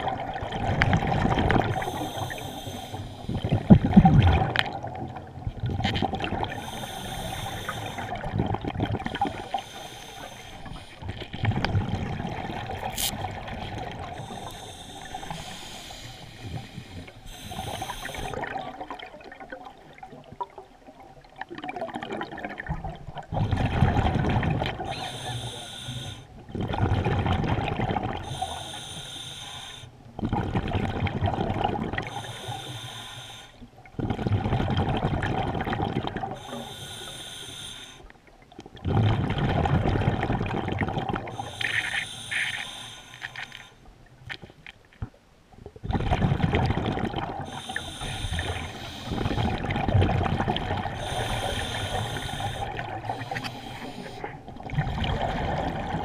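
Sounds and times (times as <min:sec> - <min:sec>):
exhaled bubbles underwater: 0:00.0 - 0:29.0, 0:30.1 - 0:32.7, 0:33.6 - 0:43.5, 0:44.1 - 0:56.0
regulator inhalation hiss: 0:01.8 - 0:03.4, 0:06.6 - 0:08.1, 0:09.4 - 0:11.0, 0:14.2 - 0:18.4, 0:24.9 - 0:26.3, 0:28.3 - 0:29.9, 0:32.1 - 0:33.6, 0:36.4 - 0:38.0, 0:41.4 - 0:43.7, 0:47.5 - 0:49.4, 0:51.0 - 0:54.3.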